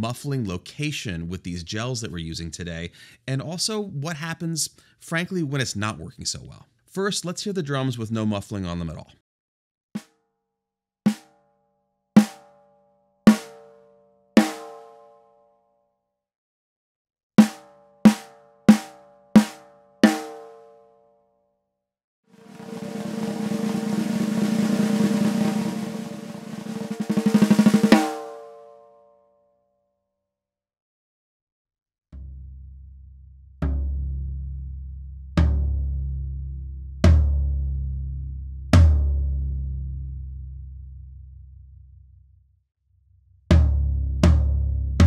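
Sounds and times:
snare drum strokes and roll: 0:11.1 - 0:11.3, 0:12.2 - 0:12.5, 0:13.3 - 0:13.6, 0:14.4 - 0:14.8, 0:17.4 - 0:20.5, 0:22.4 - 0:28.4
floor tom ringing strokes: 0:22.4 - 0:28.4.

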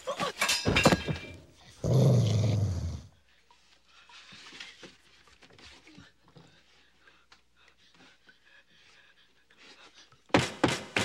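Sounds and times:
dog growling low: 0:01.8 - 0:03.2.

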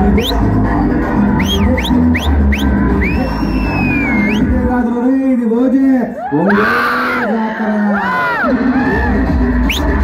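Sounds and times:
dance music with heavy bass: 0:00.0 - 0:05.0, 0:07.6 - 0:10.0
sharp rising whistles: 0:01.4 - 0:04.5.

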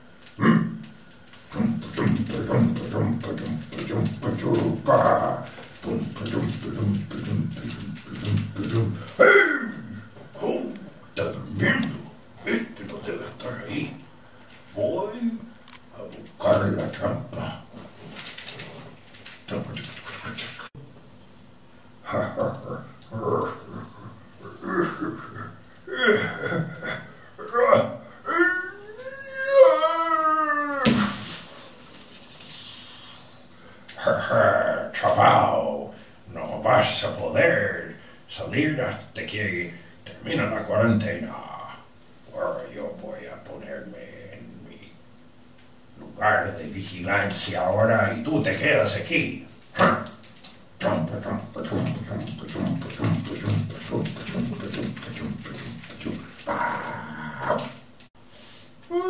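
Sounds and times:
man making wordless vocal sounds: 0:00.3 - 0:14.1, 0:14.8 - 0:20.8, 0:22.0 - 0:31.6, 0:46.0 - 0:57.9
long high cry: 0:28.2 - 0:31.4.

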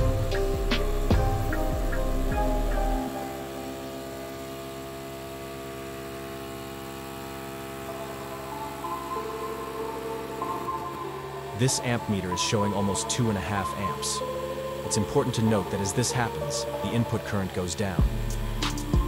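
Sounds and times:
layered humming tones: 0:00.0 - 0:19.0.

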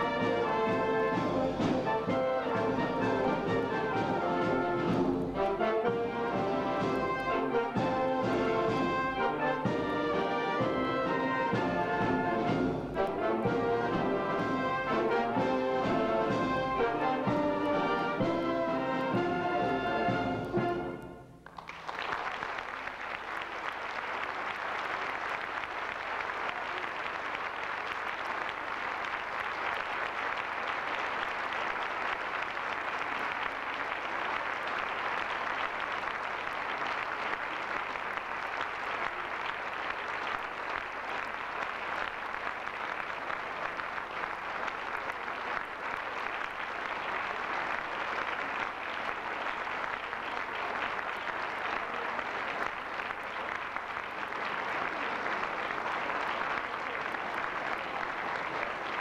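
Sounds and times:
military brass band playing: 0:00.0 - 0:21.4
audience applauding: 0:00.0 - 0:59.0.

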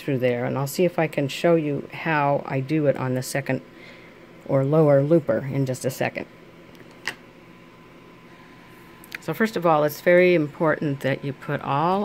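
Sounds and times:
electric fan hissing: 0:00.0 - 0:12.0.

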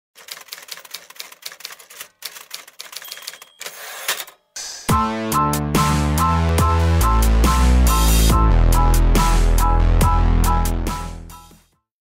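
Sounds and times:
typewriter keys clacking: 0:00.2 - 0:04.4
typewriter carriage sliding: 0:02.8 - 0:04.4.

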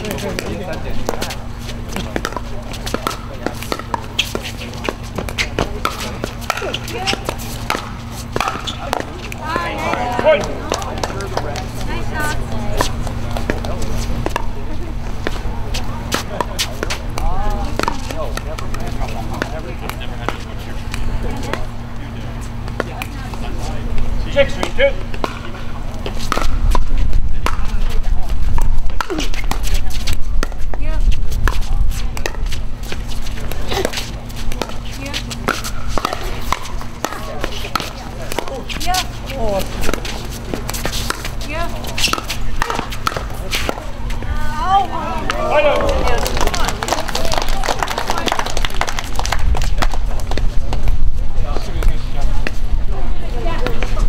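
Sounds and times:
low rumble and hum: 0:00.0 - 0:54.0
paddles hitting plastic ball: 0:00.3 - 0:11.7, 0:27.4 - 0:27.7, 0:33.3 - 0:43.9.

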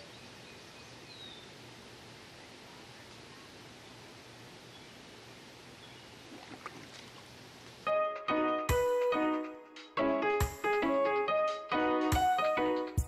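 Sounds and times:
bird chirp: 0:00.0 - 0:01.6, 0:05.8 - 0:06.2.

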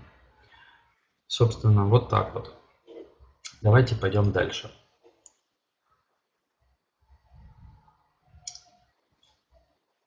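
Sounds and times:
low muffled sounds: 0:06.8 - 0:10.0.

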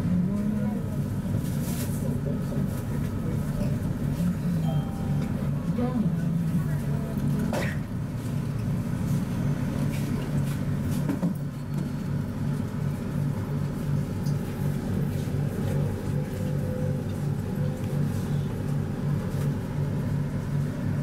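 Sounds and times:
light rail car rumbling: 0:00.0 - 0:11.4.

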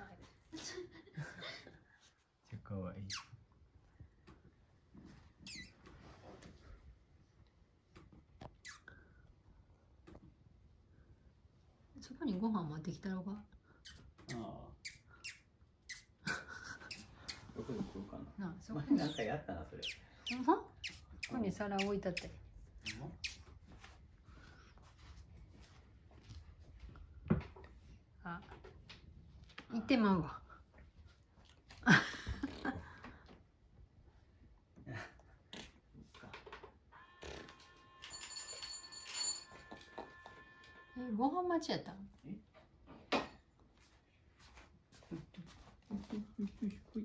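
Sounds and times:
faint electronic chime: 0:37.0 - 0:41.2.

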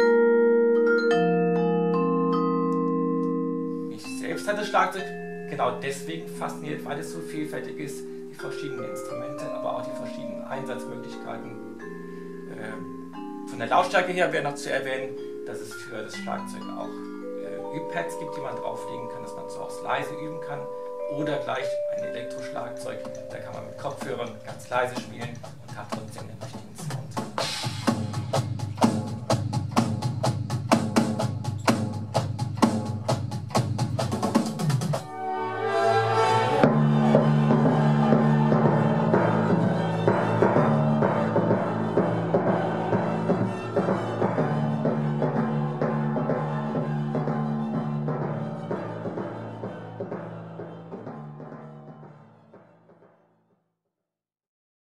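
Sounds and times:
music with sustained low notes: 0:00.0 - 0:27.3, 0:27.9 - 0:53.0
electronic drum kit groove: 0:22.4 - 0:35.1, 0:36.6 - 0:52.0.

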